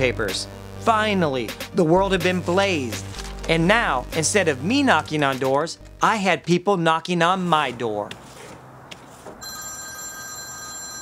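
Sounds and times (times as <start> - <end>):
mobile phone ringing: 9.4 - 11.0.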